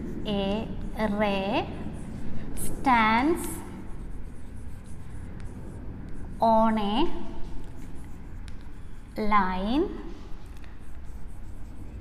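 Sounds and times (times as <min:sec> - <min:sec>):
chalk scratching on chalkboard: 0:00.0 - 0:12.0
low room hum: 0:00.0 - 0:12.0.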